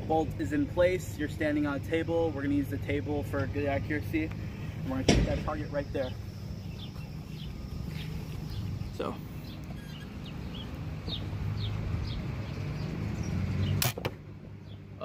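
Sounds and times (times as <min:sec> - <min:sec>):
distant lawnmower engine drone: 0:00.0 - 0:15.0.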